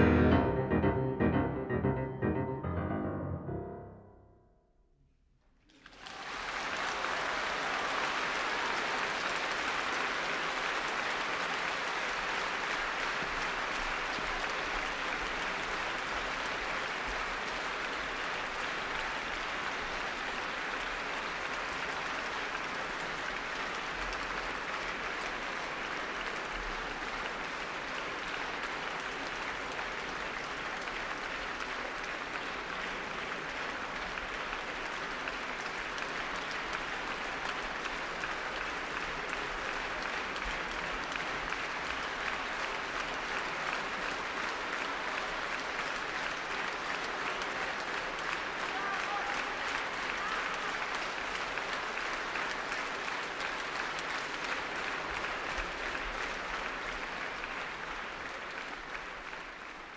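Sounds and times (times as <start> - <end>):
audience applauding: 0.0 - 3.8, 5.7 - 59.9.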